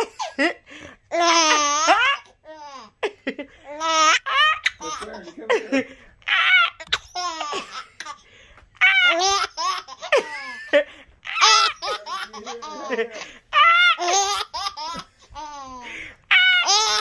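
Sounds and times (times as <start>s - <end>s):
infant laughing: 1.1s - 8.2s, 8.8s - 17.0s.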